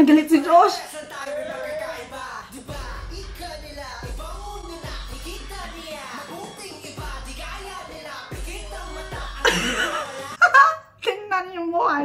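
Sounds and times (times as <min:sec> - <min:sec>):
woman's excited laughing wail: 0:09.4 - 0:10.8.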